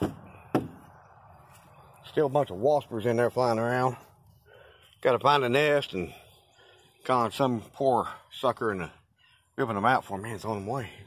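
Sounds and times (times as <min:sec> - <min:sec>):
sharp knocks on van door: 0:00.0 - 0:00.8.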